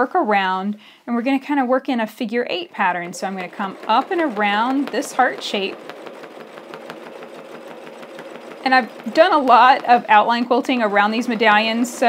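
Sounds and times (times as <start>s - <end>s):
sewing machine running: 2.5s - 12.0s.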